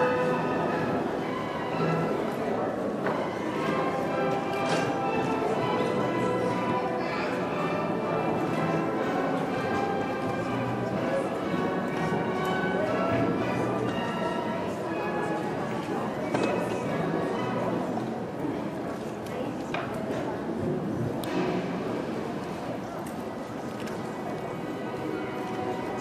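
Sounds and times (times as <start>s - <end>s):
background music: 0.0s - 16.0s
chatter of many voices: 0.0s - 26.0s.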